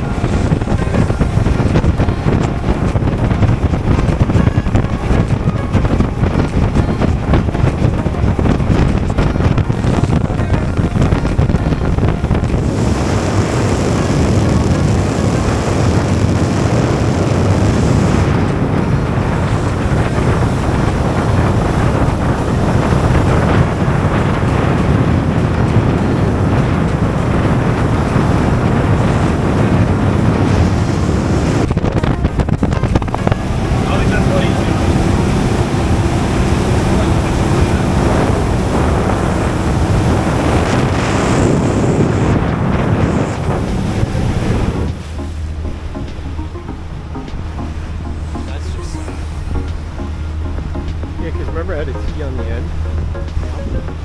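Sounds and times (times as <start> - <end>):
outboard motor running: 0.0 - 54.0
rushing water: 0.0 - 54.0
wind buffeting microphone: 0.0 - 54.0.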